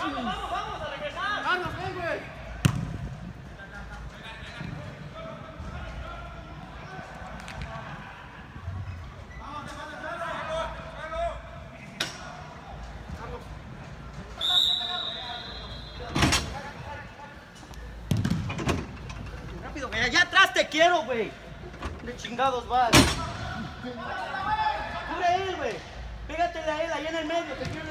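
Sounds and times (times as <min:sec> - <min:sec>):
referee's whistle blast: 0:14.4 - 0:16.2.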